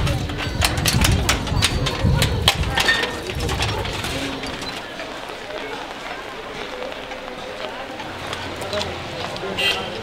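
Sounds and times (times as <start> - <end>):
background chatter of people: 0.0 - 10.0
outdoor hubbub: 0.0 - 10.0.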